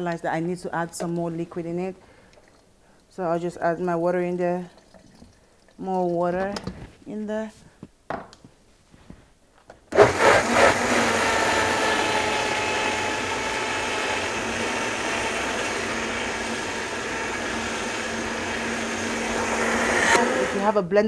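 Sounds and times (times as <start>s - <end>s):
blender running: 10.0s - 20.8s.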